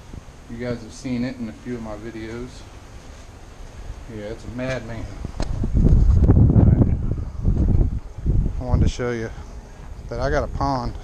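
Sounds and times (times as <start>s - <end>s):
wind buffeting microphone: 3.9s - 11.0s.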